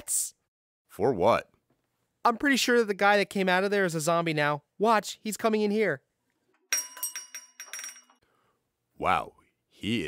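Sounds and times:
door bell jingling: 6.7 - 8.2.

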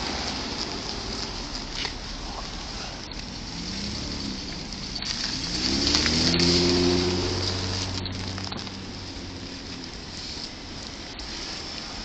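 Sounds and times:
car driving past on wet street: 0.0 - 12.0.

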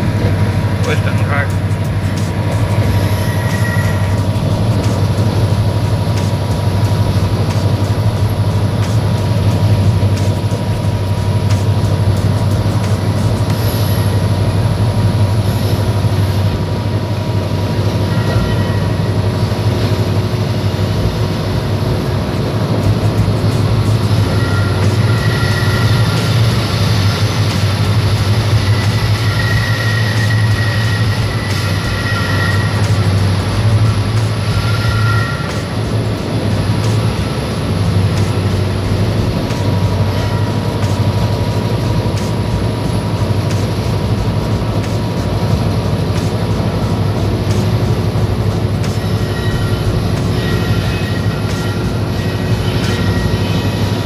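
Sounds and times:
high wheel squeal: 0.0 - 54.0
train wheels rumbling on rails: 0.0 - 54.0.

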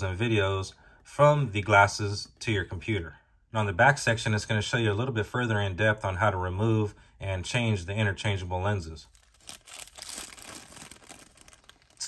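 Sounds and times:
plastic packet crinkling: 9.0 - 12.0.

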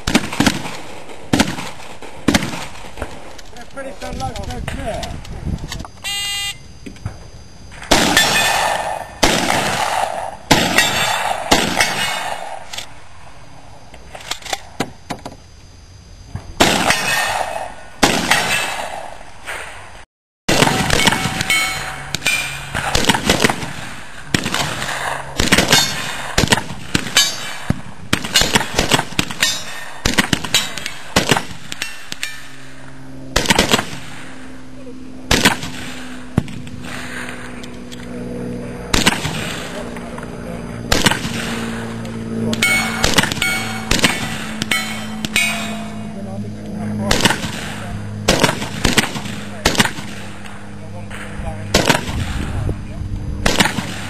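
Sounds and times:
shotgun shots: 0.0 - 3.4, 7.8 - 12.9, 16.6 - 19.8, 20.5 - 34.6, 35.3 - 37.6, 38.9 - 39.9, 40.9 - 46.2, 46.9 - 52.6, 53.4 - 54.0.

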